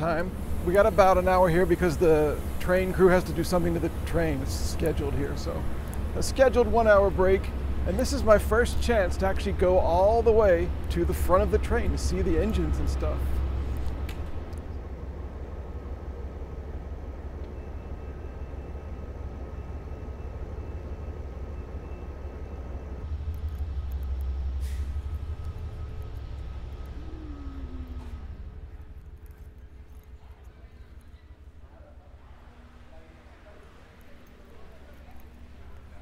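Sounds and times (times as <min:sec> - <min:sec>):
faint mechanical hum: 0:00.0 - 0:36.0
train idling low rumble: 0:00.0 - 0:36.0.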